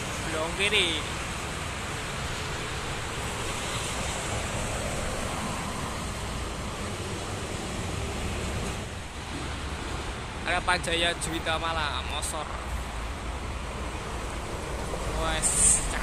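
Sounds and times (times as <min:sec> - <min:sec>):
highway traffic rushing: 0:00.0 - 0:16.0.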